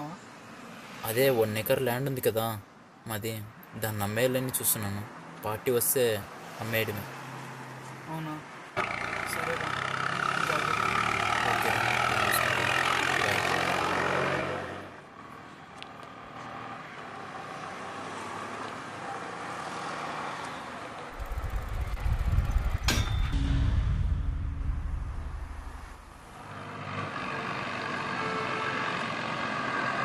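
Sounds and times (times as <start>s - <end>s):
loud passing engine: 8.8s - 15.0s, 21.2s - 30.0s
low pulsing engine: 21.2s - 26.3s.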